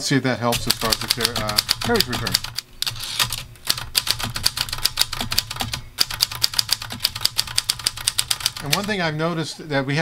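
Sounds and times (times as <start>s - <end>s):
manual typewriter keystrokes: 0.5s - 9.0s.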